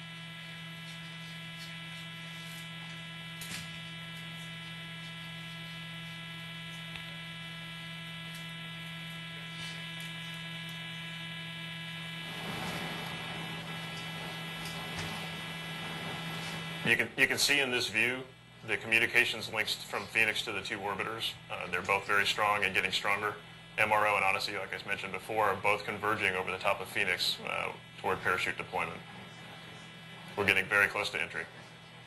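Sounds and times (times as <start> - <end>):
buzzy electrical hum: 0.0 - 32.0.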